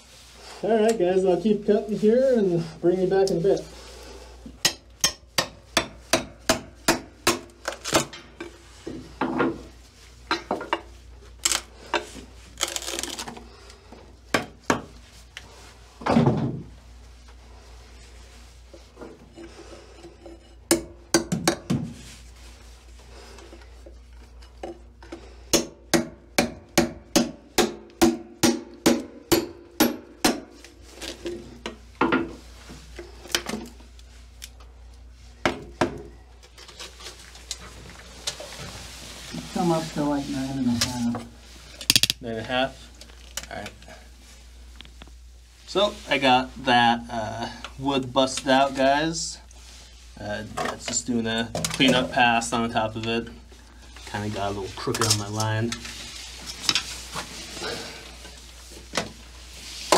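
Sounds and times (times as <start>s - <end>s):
hammer striking wood: 25.5s - 30.4s.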